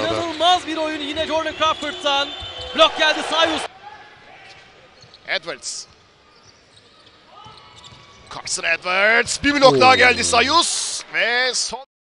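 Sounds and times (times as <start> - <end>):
quiet arena crowd: 0.0 - 11.8.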